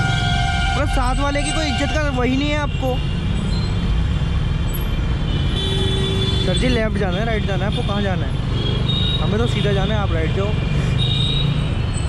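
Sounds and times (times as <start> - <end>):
motorcycle road noise rumble: 0.0 - 12.0.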